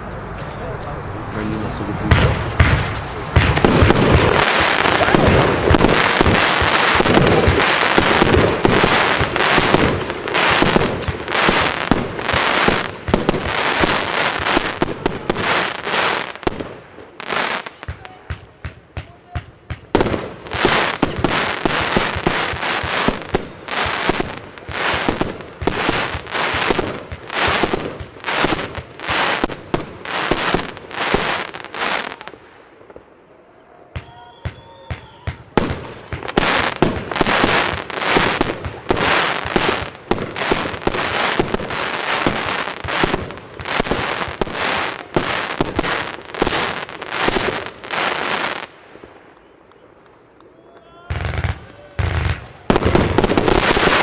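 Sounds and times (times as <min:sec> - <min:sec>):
firework cake firing: 0:01.6 - 0:32.4, 0:51.1 - 0:54.0.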